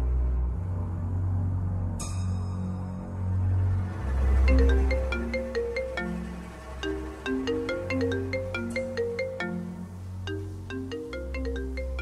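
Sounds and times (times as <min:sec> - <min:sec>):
low droning music: 0:00.0 - 0:12.0
phone ringtone melody: 0:04.4 - 0:12.0.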